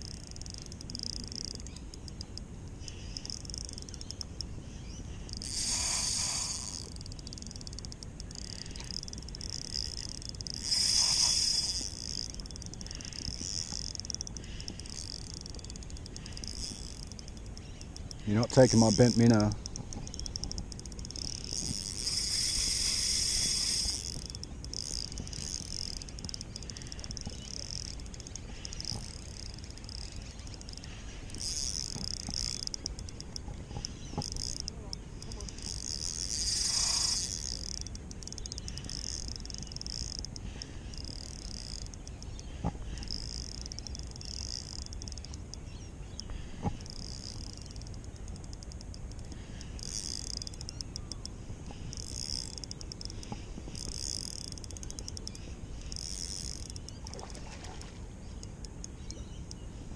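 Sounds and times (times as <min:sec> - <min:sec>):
sharp clicks: 0:00.0 - 0:04.5, 0:05.2 - 0:57.4
fishing reel drag buzzing: 0:00.0 - 0:59.6.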